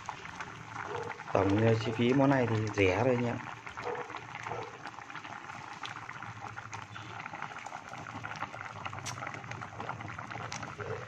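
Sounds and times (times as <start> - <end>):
broth boiling and bubbling: 0.0 - 11.0.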